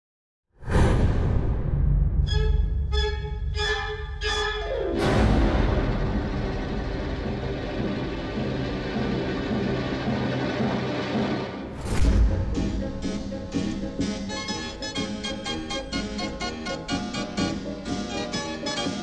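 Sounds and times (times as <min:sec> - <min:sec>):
orchestral music: 0:00.6 - 0:19.0.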